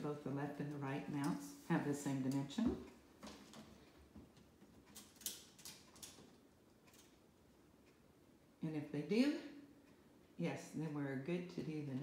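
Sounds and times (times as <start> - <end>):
soft clicks and rustles: 1.1 - 8.0.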